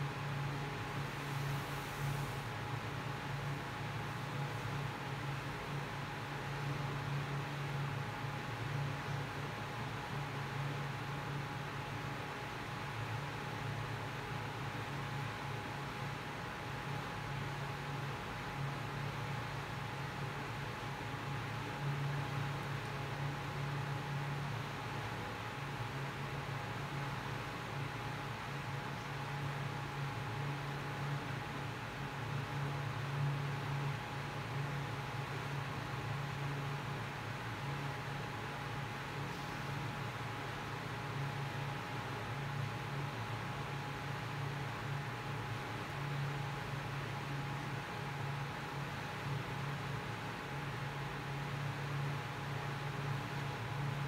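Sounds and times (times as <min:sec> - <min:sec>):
background hiss: 0:00.2 - 0:04.9.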